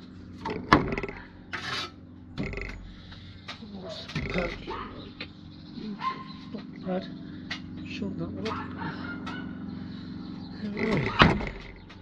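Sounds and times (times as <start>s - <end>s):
low machine hum: 0.0s - 12.0s
bird calls: 0.4s - 12.0s.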